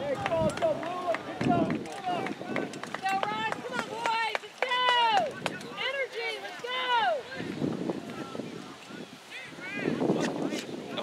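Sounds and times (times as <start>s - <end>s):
people shouting and calling out: 0.0s - 10.2s.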